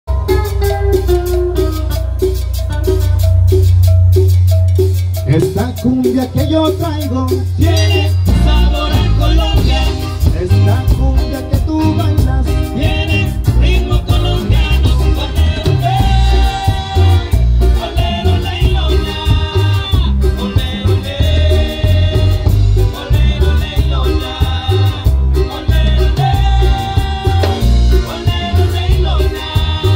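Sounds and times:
cumbia band playing: 0:00.1 - 0:29.9
drums: 0:00.1 - 0:29.9
keyboard: 0:00.1 - 0:29.9
loud sustained bass line: 0:00.1 - 0:29.9.

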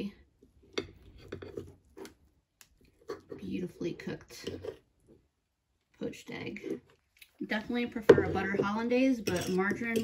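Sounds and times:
forks clinking on ceramic plates: 0:09.2 - 0:10.0.

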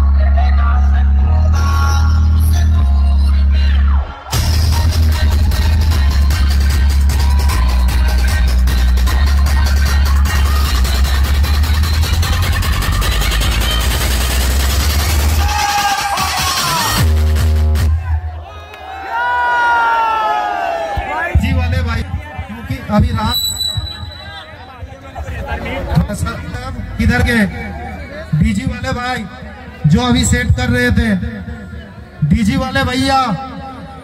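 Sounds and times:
loud dance music with heavy bass: 0:00.0 - 0:18.2
crowd cheering: 0:04.0 - 0:08.6, 0:12.9 - 0:17.0, 0:17.8 - 0:21.5.

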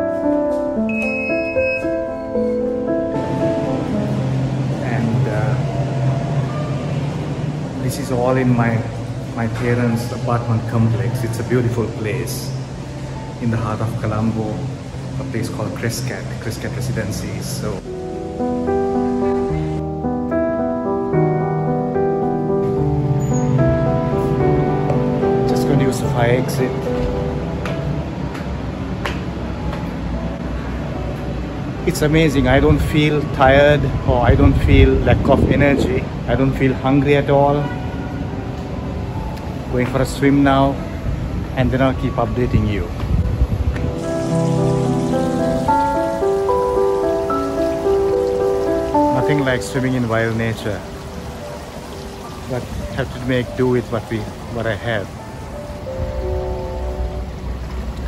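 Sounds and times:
soft piano-like music: 0:00.0 - 0:58.0.

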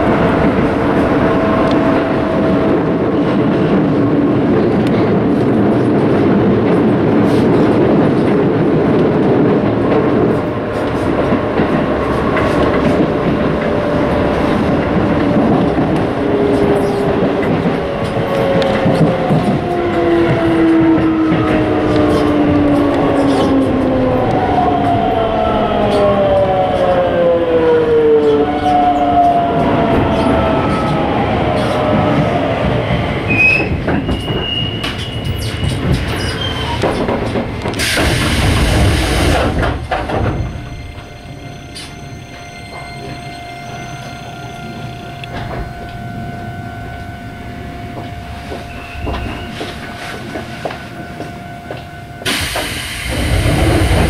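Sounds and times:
train running on rails: 0:00.0 - 0:54.0
high squeal: 0:32.8 - 0:36.9, 0:40.4 - 0:45.8, 0:48.7 - 0:50.2.

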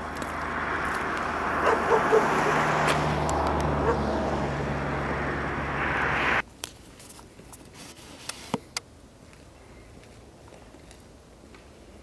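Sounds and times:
even rushing noise: 0:00.0 - 0:06.4
vehicle engine hum: 0:00.0 - 0:06.5.

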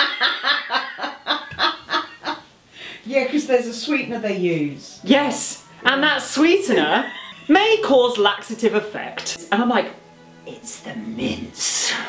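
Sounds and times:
person cackling laughter: 0:00.0 - 0:02.4.

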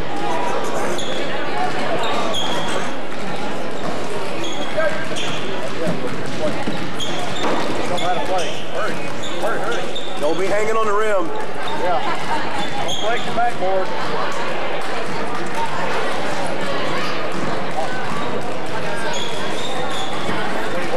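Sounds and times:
echoing din in hall: 0:00.0 - 0:20.9
shoe squeaks: 0:00.3 - 0:10.8, 0:12.6 - 0:13.6, 0:18.9 - 0:20.8.

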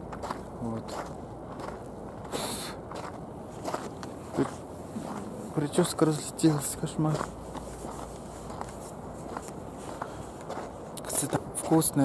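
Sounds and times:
faint footsteps: 0:00.0 - 0:12.0.

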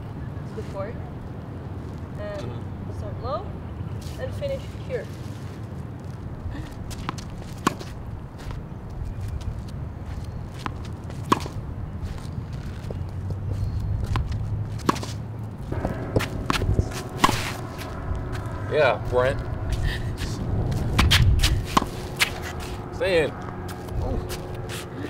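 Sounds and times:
footsteps shuffling on hard court: 0:05.0 - 0:18.5, 0:20.7 - 0:22.8
steady low rumble: 0:05.8 - 0:25.0
tennis balls struck by rackets: 0:06.9 - 0:08.6, 0:10.6 - 0:19.7, 0:20.6 - 0:25.0.

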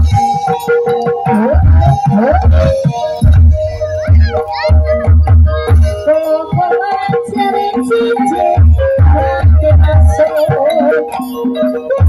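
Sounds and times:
heavy low drum beat: 0:01.5 - 0:06.2
voices: 0:02.2 - 0:07.7.

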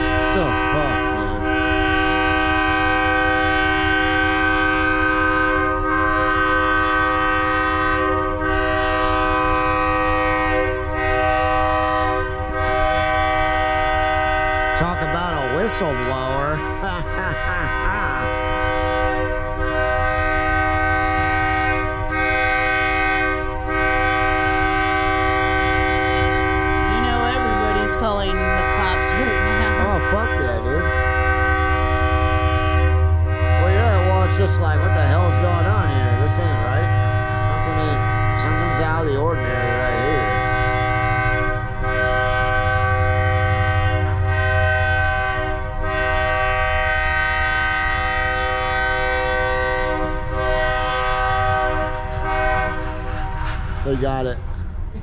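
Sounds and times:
low engine rumble: 0:00.0 - 0:22.8, 0:23.5 - 0:55.0
locomotive air horn blasts: 0:00.0 - 0:54.8
wavering voice-like sound: 0:00.3 - 0:01.6, 0:14.8 - 0:18.5, 0:26.9 - 0:30.9, 0:33.6 - 0:36.9, 0:37.6 - 0:40.4.

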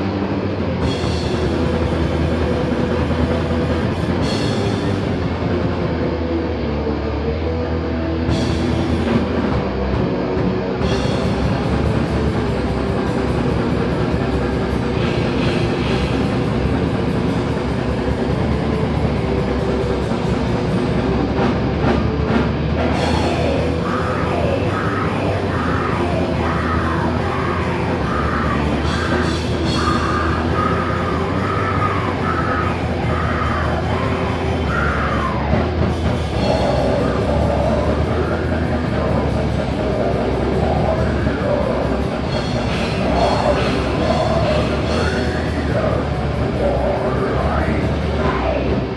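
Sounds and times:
heavy metal band playing live: 0:00.0 - 0:48.9.

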